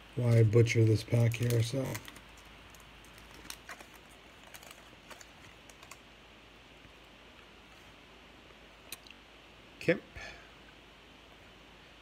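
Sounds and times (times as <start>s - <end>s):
foil wrapper tearing: 0.2s - 6.0s.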